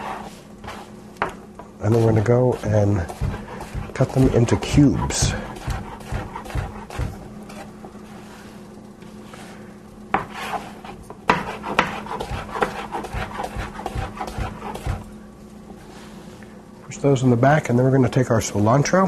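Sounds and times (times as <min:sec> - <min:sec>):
knife rubbing: 0:01.9 - 0:08.4.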